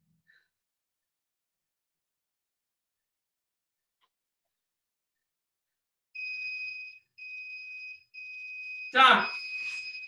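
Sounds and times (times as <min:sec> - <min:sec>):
electronic timer beeps: 0:06.2 - 0:10.0.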